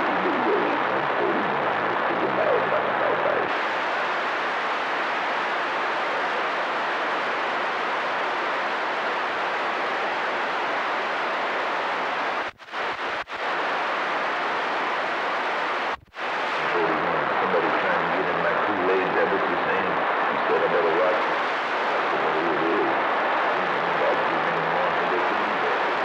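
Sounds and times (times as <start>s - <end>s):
radio static hiss: 0.0s - 26.0s.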